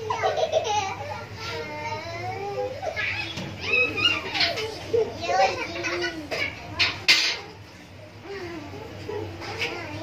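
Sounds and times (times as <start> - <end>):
children talking and calling out: 0.0 - 10.0.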